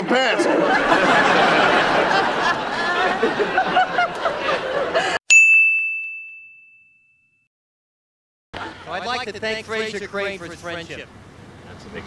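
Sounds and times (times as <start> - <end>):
high bright bell ding: 5.3 - 7.4.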